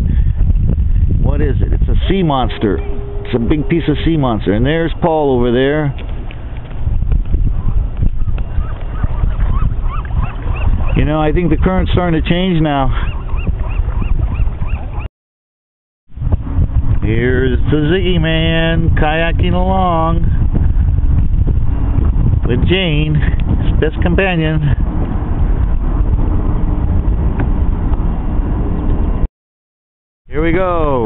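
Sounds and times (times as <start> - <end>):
wind rumble on microphone: 0.0 - 15.1, 16.1 - 29.3.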